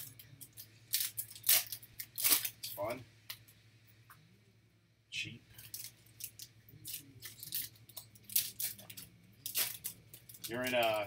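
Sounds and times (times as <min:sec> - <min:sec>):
cards crinkling and clicking: 0:05.6 - 0:11.0.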